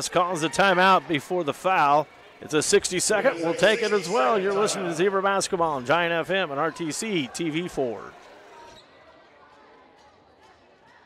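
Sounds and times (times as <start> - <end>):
murmur of distant crowd voices: 0.0 - 11.0.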